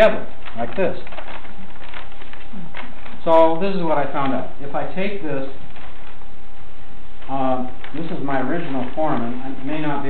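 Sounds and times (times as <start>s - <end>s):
paper rustling and crinkling: 0.0s - 4.4s, 5.0s - 6.3s, 7.2s - 10.0s
low background hum: 0.0s - 10.0s.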